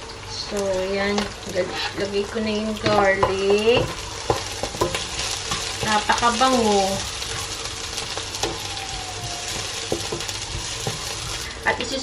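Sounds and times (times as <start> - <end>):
onions sizzling in oil: 0.0 - 12.0
spatula knocking against pan: 2.8 - 6.0, 9.9 - 11.4.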